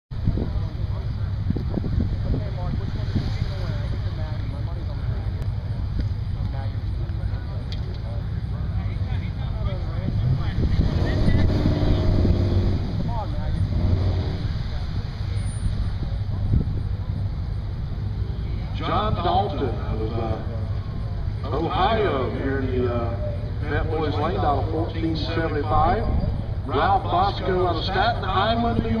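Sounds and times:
car engines idling: 0.1 - 29.0.

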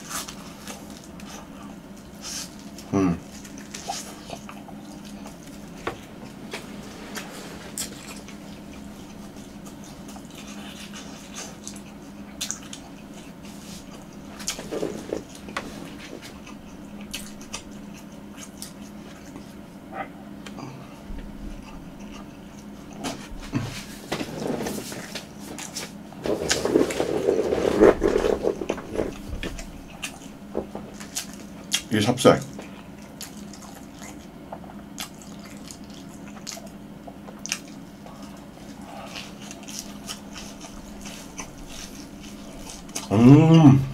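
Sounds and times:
steady low hum: 0.0 - 43.9
close chewing with wet mouth clicks: 8.1 - 14.6, 32.6 - 43.1.

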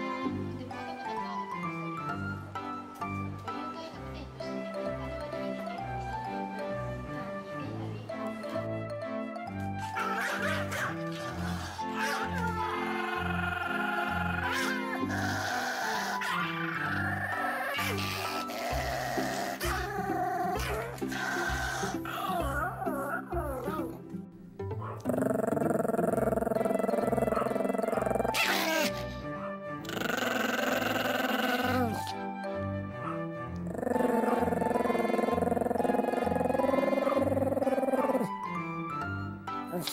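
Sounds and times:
dog growling: 9.9 - 24.1, 24.8 - 29.2, 29.8 - 32.1, 33.5 - 38.5.

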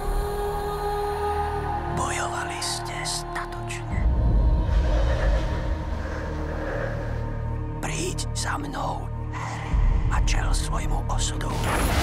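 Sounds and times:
sustained drone: 2.8 - 8.4
deep low rumble: 3.9 - 8.0.

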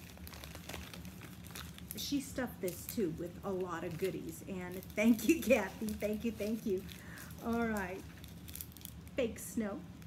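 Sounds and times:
bag crackling and clicking: 0.0 - 9.2.

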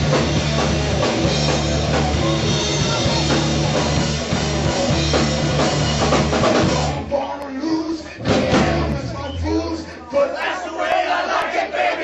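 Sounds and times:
punk band playing: 0.0 - 10.0.

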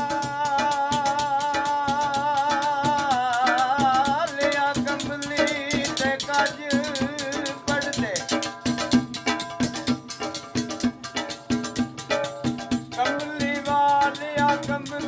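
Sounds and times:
hand-drumming on steel pots: 0.0 - 15.0.

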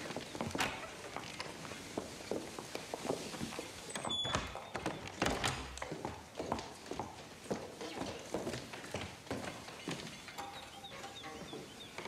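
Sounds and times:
footsteps on wooden floor: 0.0 - 12.0.

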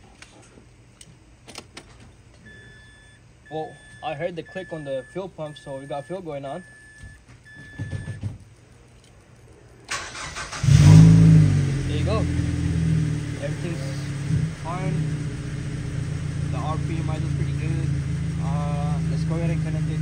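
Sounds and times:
car engine cranking and idling: 9.9 - 20.0.

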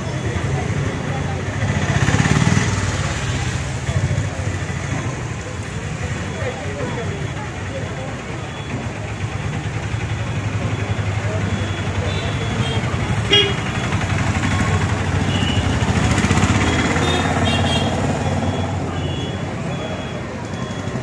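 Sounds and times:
people talking: 0.0 - 21.0
vehicles passing engine rumble: 0.0 - 21.0.

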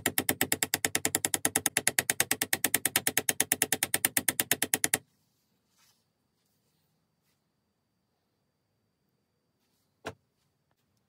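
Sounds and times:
rapid ratchet clicking: 0.0 - 5.0.

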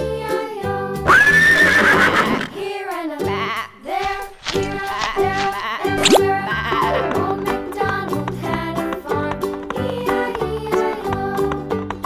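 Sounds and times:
cheerful children's music: 0.0 - 1.2, 2.6 - 12.0
horse neighing: 1.1 - 2.6, 4.7 - 7.5.

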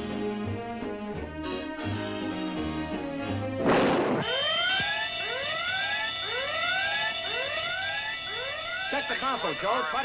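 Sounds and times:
short crash: 3.6 - 4.4
alarm rising whoops: 4.2 - 10.0
steady high alarm tone: 4.2 - 10.0.

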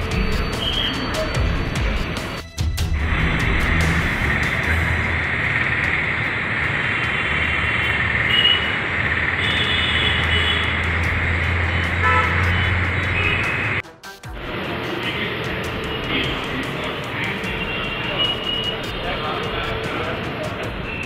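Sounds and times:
noisy outdoor din: 0.0 - 21.0
noisy rumble: 2.8 - 13.8.

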